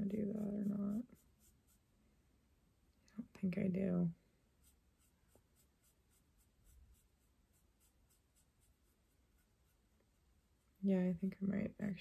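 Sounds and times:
paintbrush strokes on wood: 0:00.0 - 0:01.9, 0:04.5 - 0:11.0.

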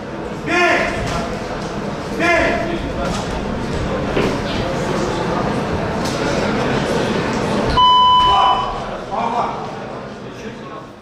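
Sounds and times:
crowd of voices: 0:00.0 - 0:11.0
electronic buzzer tone: 0:07.7 - 0:08.8.

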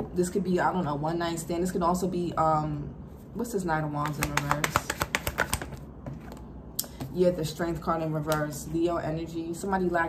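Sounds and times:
card handling: 0:04.0 - 0:06.5
cards being shuffled: 0:04.0 - 0:06.5.

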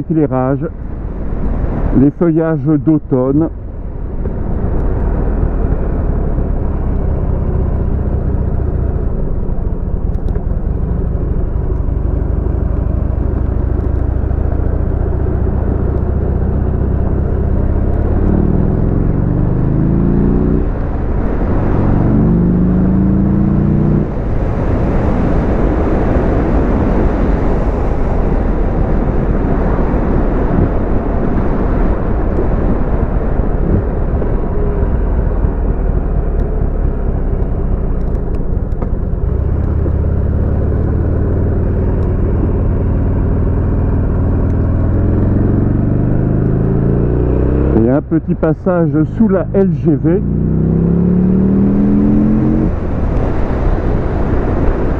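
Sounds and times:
motorcycle engine revving: 0:04.2 - 0:30.8, 0:31.4 - 0:54.9
wind noise: 0:23.4 - 0:48.8, 0:50.6 - 0:54.9.

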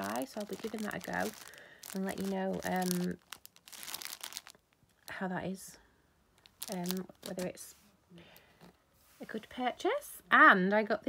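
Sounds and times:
plastic packet crinkling: 0:00.0 - 0:05.1, 0:06.4 - 0:07.6.

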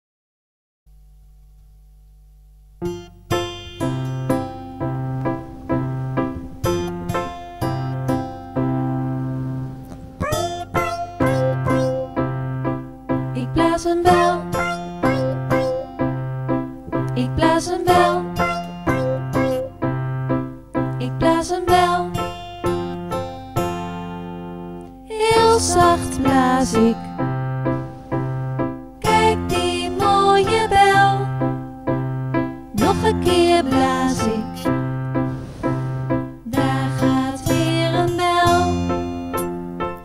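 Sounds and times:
faint steady hum: 0:00.9 - 0:22.8
acoustic guitar notes ringing: 0:02.8 - 0:20.6
plucked string instrument: 0:02.9 - 0:13.2, 0:13.8 - 0:20.4, 0:32.6 - 0:40.0.

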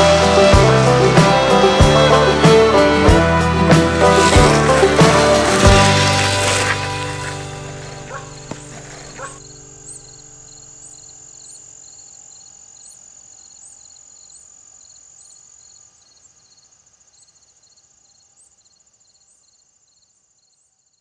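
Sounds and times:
acoustic folk-rock chords: 0:00.0 - 0:10.8
crickets chirping: 0:00.0 - 0:21.0.

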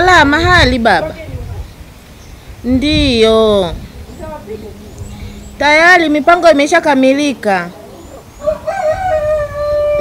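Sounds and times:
rooster crowing: 0:08.4 - 0:10.0.

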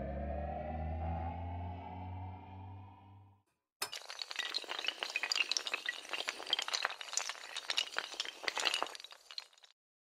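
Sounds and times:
dominoes toppling clatter: 0:03.9 - 0:09.7.

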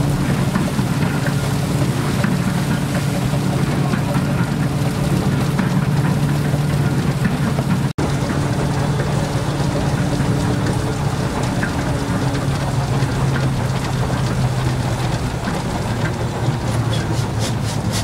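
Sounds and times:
steam engine mechanical drone: 0:00.0 - 0:18.0.

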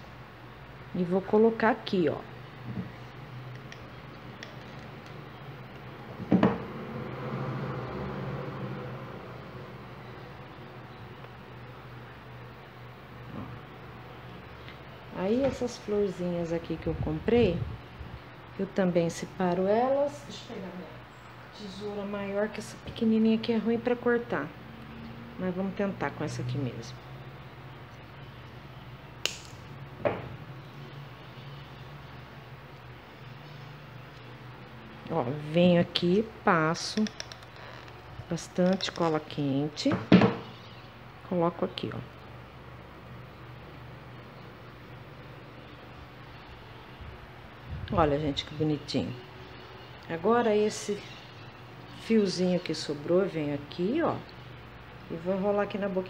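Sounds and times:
steady low hum: 0:00.0 - 0:56.0.

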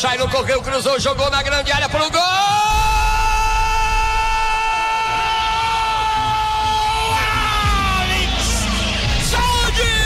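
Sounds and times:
radio narrator shouting goal cry: 0:00.0 - 0:10.0.

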